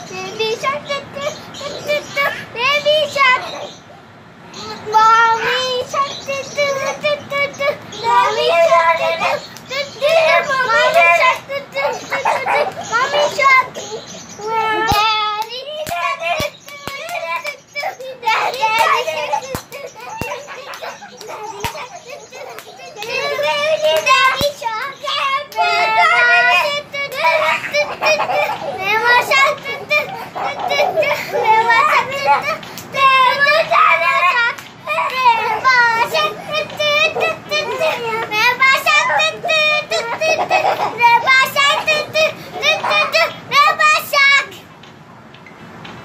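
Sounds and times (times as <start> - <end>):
children singing and shouting: 0.0 - 46.0.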